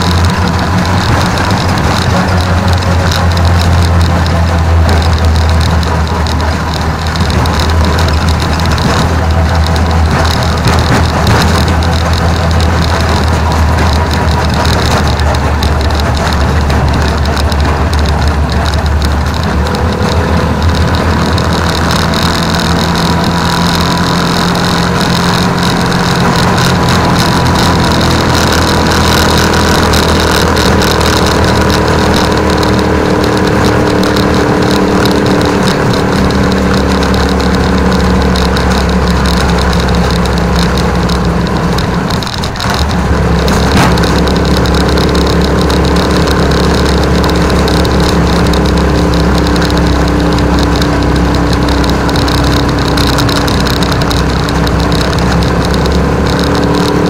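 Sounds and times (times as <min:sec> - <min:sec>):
motorcycle tricycle engine running: 0:00.0 - 0:57.0.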